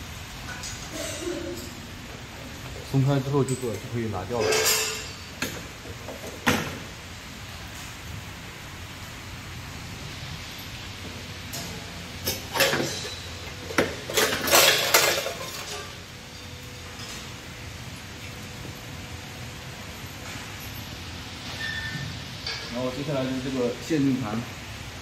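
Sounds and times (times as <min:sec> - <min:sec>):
metal parts clinking and scraping: 0:03.4 - 0:05.3, 0:11.5 - 0:17.3.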